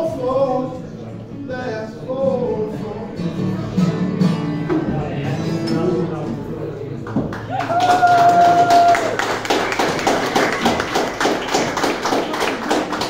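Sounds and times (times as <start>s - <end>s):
audience clapping: 7.0s - 13.0s
high held cheer: 7.4s - 12.5s.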